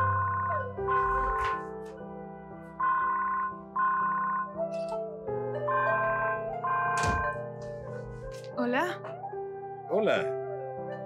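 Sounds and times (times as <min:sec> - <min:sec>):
soft background music: 0:00.0 - 0:11.0
mobile phone ringtone trilling: 0:02.8 - 0:04.6, 0:05.7 - 0:07.4.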